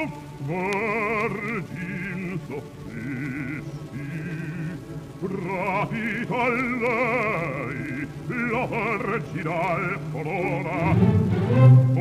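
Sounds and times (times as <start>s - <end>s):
man singing opera with vibrato: 0.0s - 12.0s
orchestra holding notes: 10.4s - 12.0s.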